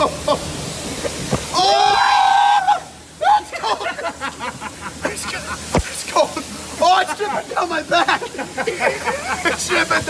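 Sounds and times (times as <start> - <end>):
man shrieking: 1.5 - 3.6
laughter: 3.4 - 5.8, 7.0 - 10.0.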